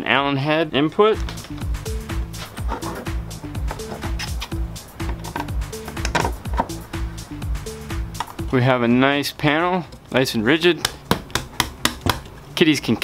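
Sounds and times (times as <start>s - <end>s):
background music with steady beat: 1.0s - 10.2s, 10.8s - 12.4s.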